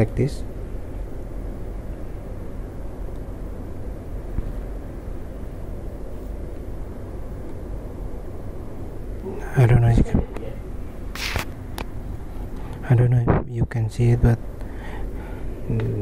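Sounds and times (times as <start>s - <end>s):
low room rumble: 0.0s - 16.0s.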